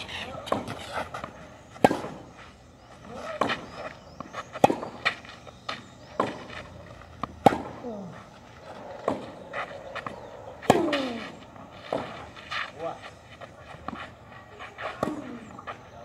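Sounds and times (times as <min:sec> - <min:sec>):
racket hitting tennis ball: 0:00.1 - 0:02.3, 0:04.5 - 0:05.2, 0:07.2 - 0:07.8, 0:09.0 - 0:09.4, 0:10.0 - 0:12.4, 0:14.8 - 0:15.6
tennis ball bouncing: 0:00.4 - 0:02.3, 0:03.2 - 0:07.8, 0:09.0 - 0:12.2.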